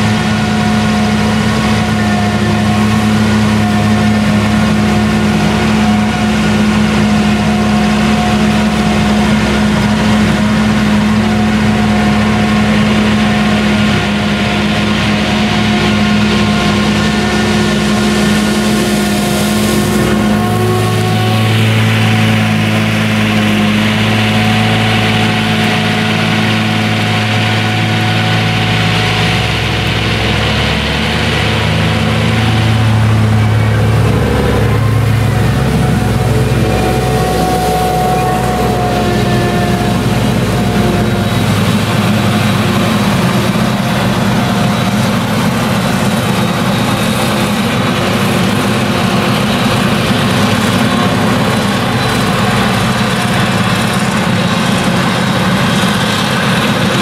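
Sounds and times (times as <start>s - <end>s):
deep hum: 0.0s - 57.0s
harvester cutting and chopping: 0.0s - 57.0s
tractor diesel engine: 0.0s - 57.0s.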